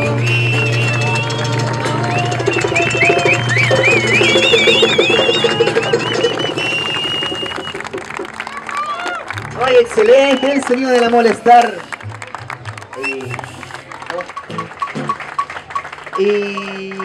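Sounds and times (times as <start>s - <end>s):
street band chord ringing: 0.0s - 8.4s
cheers and whistles: 0.0s - 9.3s, 10.0s - 11.0s, 12.9s - 14.2s
audience applause: 0.6s - 17.0s.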